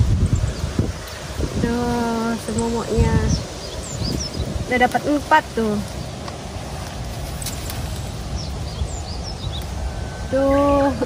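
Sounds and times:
high bird chirps: 0:00.0 - 0:06.3, 0:07.3 - 0:11.0
low outdoor rumble: 0:00.0 - 0:11.0.

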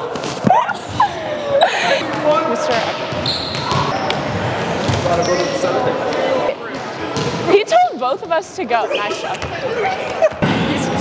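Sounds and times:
volleyballs bouncing and being hit: 0:00.0 - 0:01.0, 0:02.0 - 0:07.8, 0:09.2 - 0:11.0
players talking: 0:00.0 - 0:11.0.

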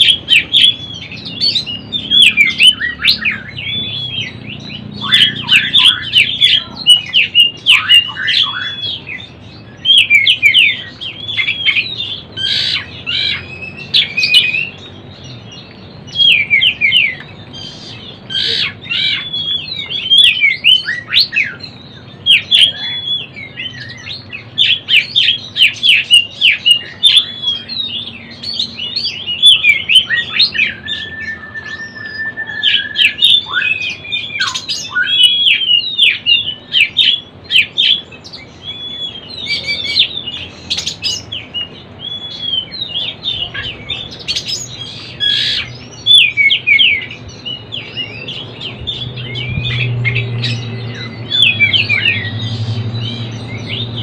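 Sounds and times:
bird chirping and warbling: 0:00.0 - 0:54.0.

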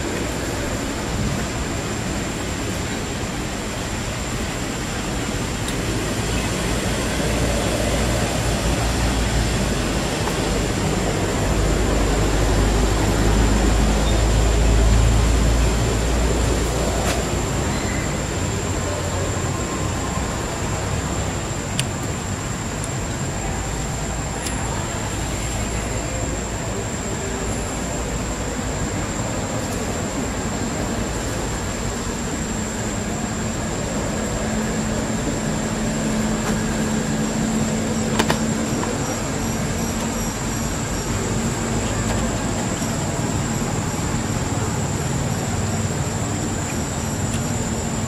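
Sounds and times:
outdoor background noise: 0:00.0 - 0:48.0.

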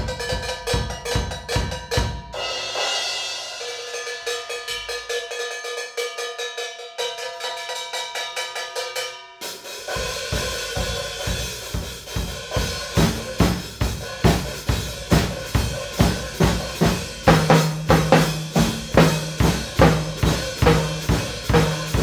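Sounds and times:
drum kit playing: 0:00.0 - 0:05.8, 0:09.4 - 0:22.0
cymbals ringing: 0:00.0 - 0:22.0.

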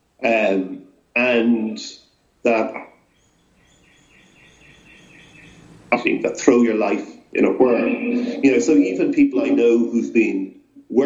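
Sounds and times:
low background noise: 0:00.0 - 0:11.0
faint bird chirping: 0:01.6 - 0:11.0.

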